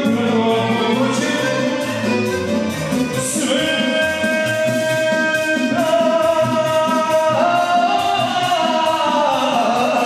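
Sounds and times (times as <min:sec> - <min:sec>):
man singing into a microphone: 0:00.0 - 0:02.3, 0:03.0 - 0:10.0
live band playing: 0:00.0 - 0:10.0.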